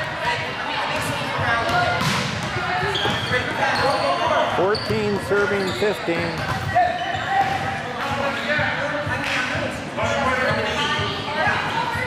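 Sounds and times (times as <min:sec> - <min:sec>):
voices talking and calling echoing: 0:00.0 - 0:12.0.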